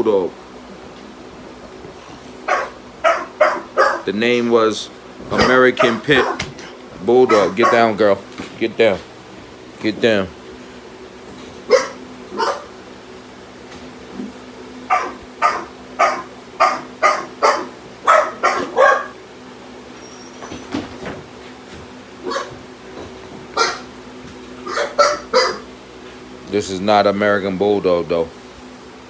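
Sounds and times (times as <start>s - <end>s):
dog barking: 2.5s - 4.1s, 5.3s - 6.5s, 7.3s - 8.0s, 11.7s - 12.7s, 14.9s - 19.2s, 22.2s - 22.6s, 23.6s - 23.9s, 24.6s - 25.7s.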